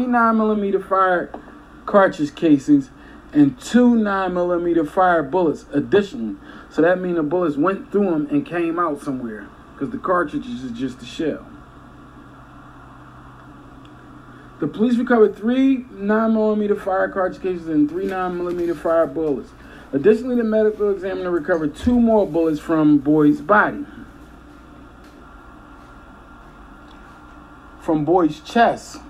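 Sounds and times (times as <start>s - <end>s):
low electrical hum with hiss: 0.0s - 29.0s.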